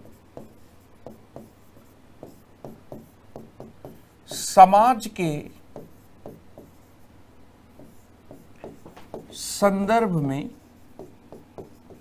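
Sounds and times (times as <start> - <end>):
pen tapping on board: 0.0 - 4.4, 5.7 - 6.8, 7.7 - 9.4, 10.9 - 12.0
pen scratching on whiteboard: 0.0 - 4.5, 5.7 - 7.1, 7.7 - 9.6, 10.4 - 12.0.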